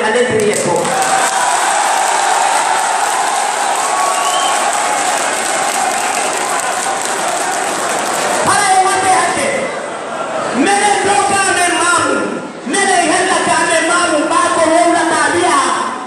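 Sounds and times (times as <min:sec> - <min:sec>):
crowd applauding: 0:00.5 - 0:08.9
voices in crowd: 0:00.9 - 0:12.7.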